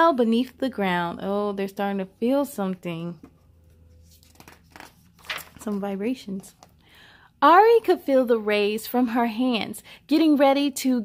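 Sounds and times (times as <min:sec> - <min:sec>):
book page turning: 0:03.5 - 0:06.8.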